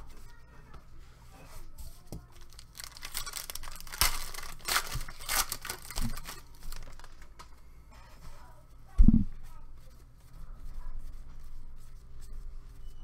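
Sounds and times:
foil wrapper tearing and crinkling: 2.4 - 7.3.

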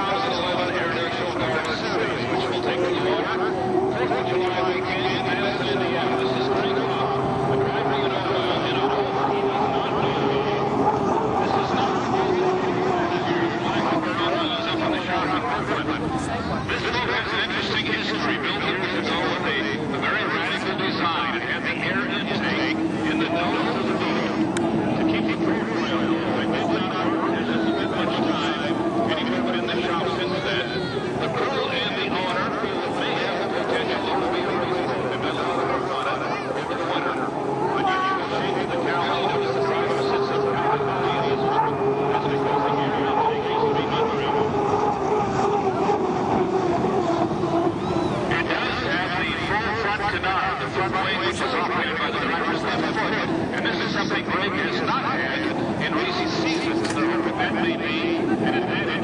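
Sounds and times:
boat turbine engine running: 0.0 - 59.0
people talking: 0.0 - 59.0.

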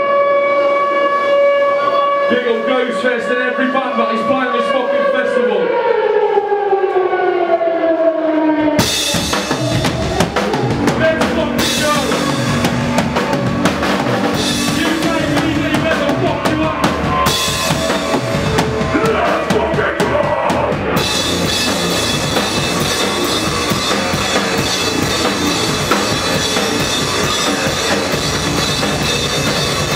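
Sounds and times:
falling pitched tone: 0.0 - 29.9
hardcore band playing: 8.7 - 29.9
heavy guitars: 8.7 - 29.9
pounding drums and cymbals: 8.8 - 29.9.

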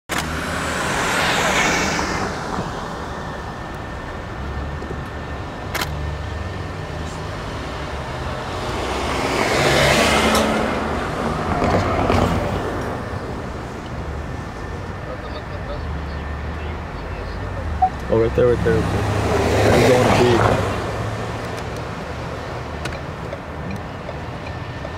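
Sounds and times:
car engine and road rumble: 0.1 - 24.9
passing vehicles: 0.1 - 24.9.

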